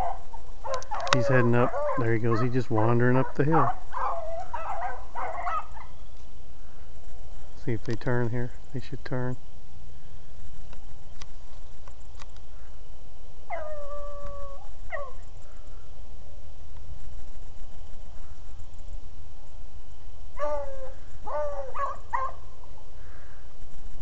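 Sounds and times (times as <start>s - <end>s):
beagles baying: 0.0s - 6.1s, 13.4s - 15.4s, 20.3s - 23.4s.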